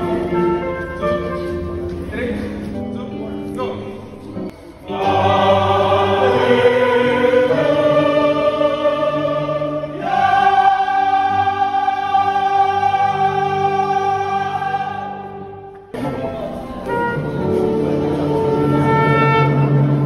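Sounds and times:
choir singing sustained chords: 0.0s - 1.2s, 4.5s - 20.0s.

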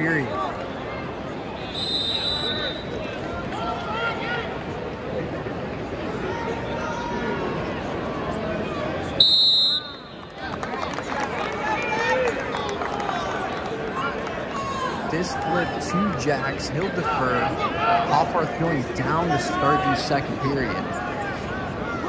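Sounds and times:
arena crowd voices: 0.0s - 22.0s
referee's whistle: 1.6s - 3.1s, 9.2s - 10.2s.

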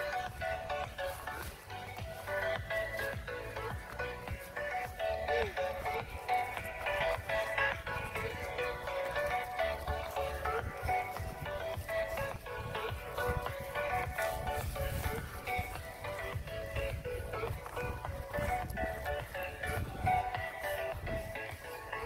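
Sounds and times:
loud song with heavy bass: 0.0s - 22.0s.

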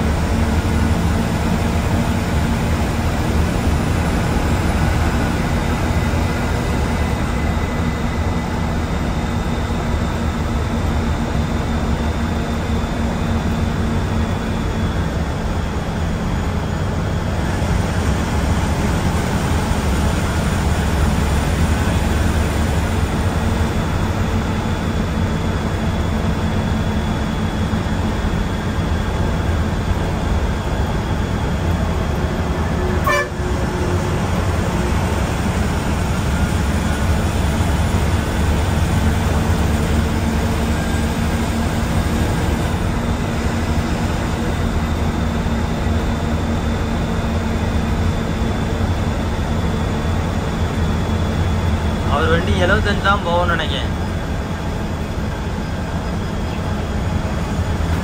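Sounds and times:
bus engine and tyres droning: 0.0s - 58.0s.

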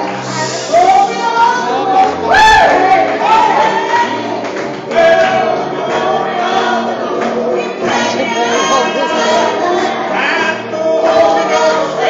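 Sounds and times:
woman singing gospel song: 0.0s - 4.4s, 5.3s - 12.0s
backing music: 0.0s - 12.0s.

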